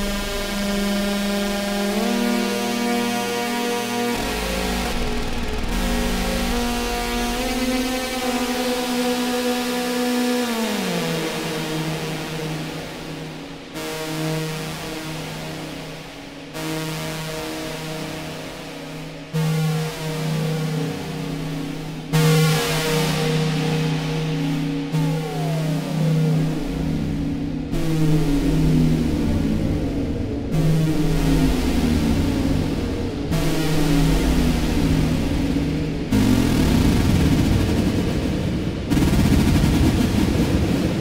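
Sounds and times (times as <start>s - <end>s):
low electronic drone: 0.0s - 41.0s.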